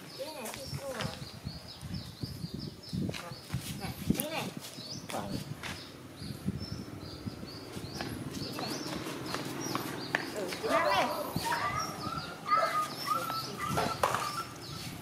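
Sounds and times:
bird chirps: 4.7s - 15.0s.

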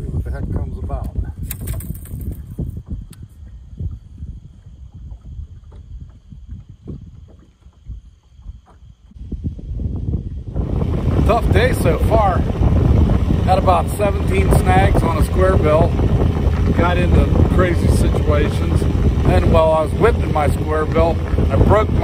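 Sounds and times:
wind buffeting microphone: 0.0s - 22.0s
brief crackle: 1.4s - 2.4s.

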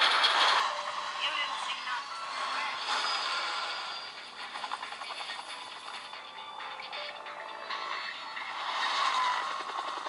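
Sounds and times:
video soundtracks through phone speaker: 0.0s - 10.0s.

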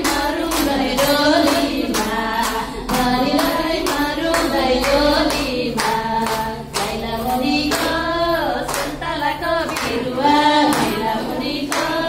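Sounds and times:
hand claps: 0.0s - 12.0s
women singing a folk song: 0.0s - 12.0s.

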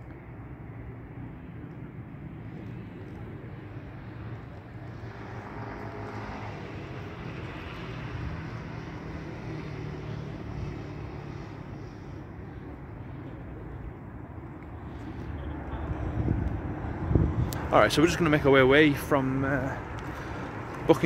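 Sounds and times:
traffic rumble: 0.0s - 21.0s
vehicle passing: 0.8s - 21.0s.

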